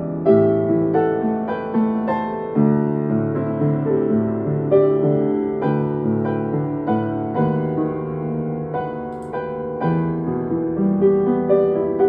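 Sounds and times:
solo piano: 0.0 - 12.0.

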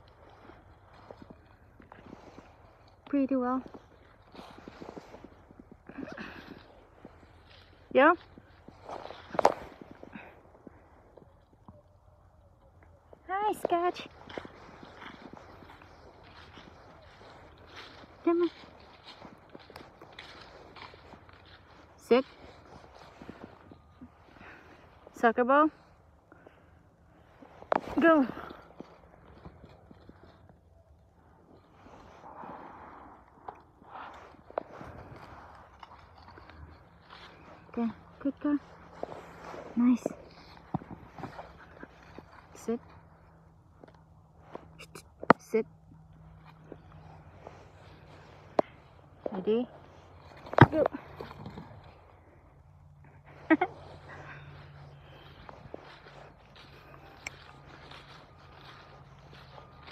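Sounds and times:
footsteps on grass: 0.0 - 11.5, 13.0 - 59.9.

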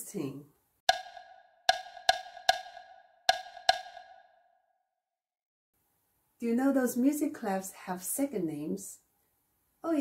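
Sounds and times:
wood block hits: 0.9 - 4.6.

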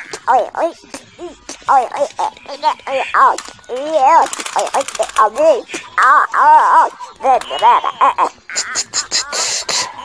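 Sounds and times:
child making playful noises: 0.0 - 10.0
rattle of clicks: 3.2 - 5.5.

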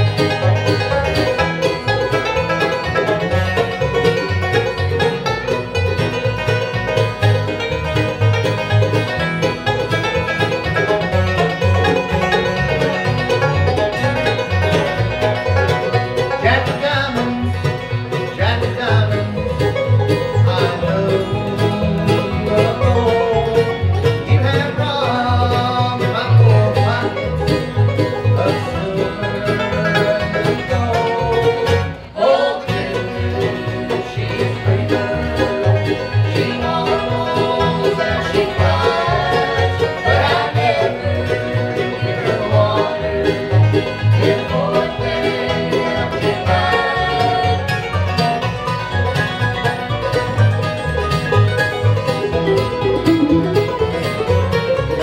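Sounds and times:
acoustic guitars: 0.0 - 55.0
banjo: 0.0 - 55.0
mandolin: 0.0 - 55.0
upright bass: 0.0 - 55.0.

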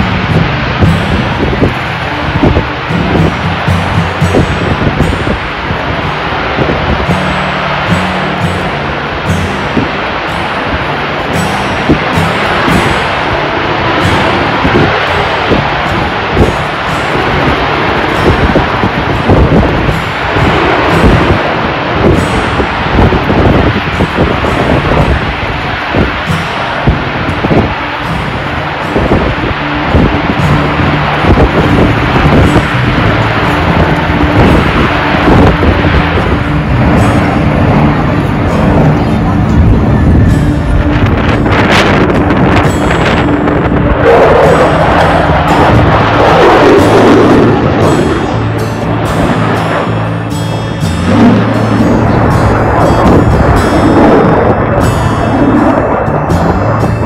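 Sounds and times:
jet engine roar: 0.0 - 57.0
music playing: 0.0 - 57.0.

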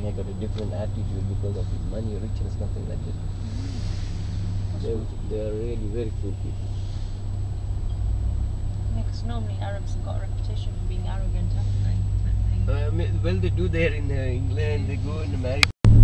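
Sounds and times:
faint voices talking: 0.0 - 4.1, 4.7 - 6.7
vehicle rumble from inside cabin: 0.0 - 16.0.

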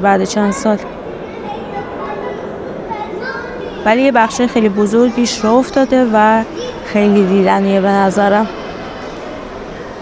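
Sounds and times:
indistinct chatter of shoppers: 0.0 - 10.0.

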